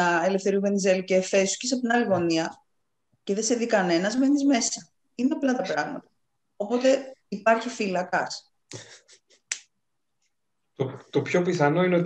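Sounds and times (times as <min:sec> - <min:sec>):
person's voice fragments: 0:01.7 - 0:02.5
man speaking: 0:10.8 - 0:12.0.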